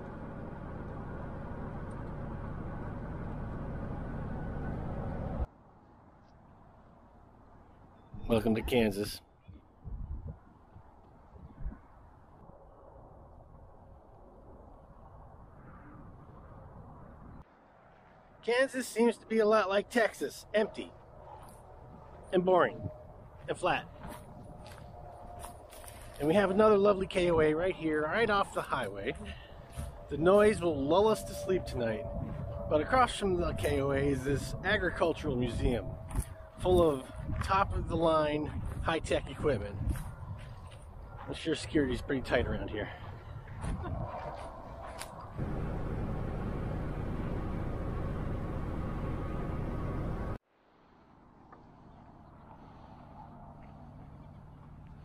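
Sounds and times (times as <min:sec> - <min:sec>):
distant highway traffic hum: 0:00.0 - 0:55.0
road and wind noise in vehicle: 0:00.0 - 0:55.0
wind on microphone: 0:09.4 - 0:17.4, 0:21.1 - 0:50.4
low rumble: 0:21.0 - 0:38.8, 0:43.2 - 0:50.4.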